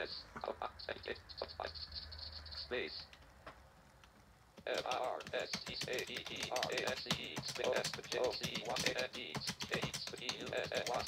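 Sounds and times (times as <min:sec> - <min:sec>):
synthetic screen-reader voice: 0:00.0 - 0:03.1, 0:04.6 - 0:11.0
fast typing on keyboard: 0:03.8 - 0:11.0.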